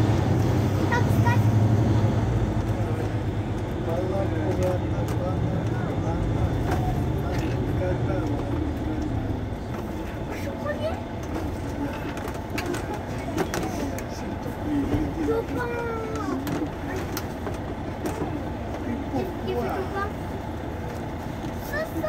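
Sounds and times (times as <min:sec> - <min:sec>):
bus diesel engine idling: 0:00.0 - 0:22.0.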